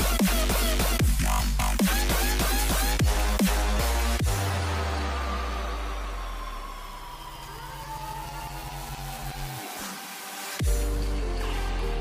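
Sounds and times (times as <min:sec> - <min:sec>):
dubstep electronic music: 0:00.0 - 0:12.0.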